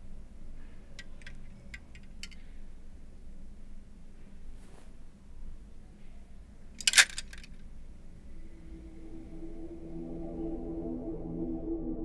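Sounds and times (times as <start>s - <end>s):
wire coat hangers clinking: 1.0s - 2.4s, 6.8s - 7.6s.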